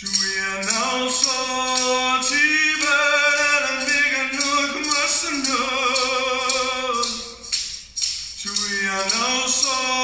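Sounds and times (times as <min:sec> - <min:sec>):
man singing unaccompanied: 0:00.0 - 0:07.7, 0:08.3 - 0:10.0.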